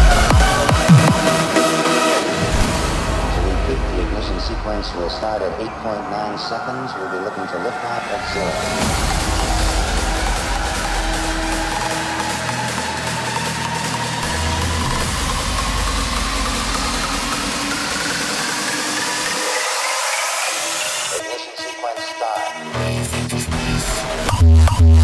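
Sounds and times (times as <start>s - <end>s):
rising sweep: 0.0s - 21.2s
electronic dance music build-up: 0.0s - 25.0s.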